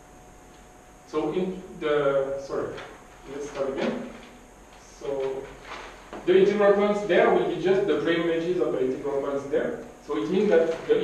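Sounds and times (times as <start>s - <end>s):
man speaking in echoing room: 1.0s - 11.0s.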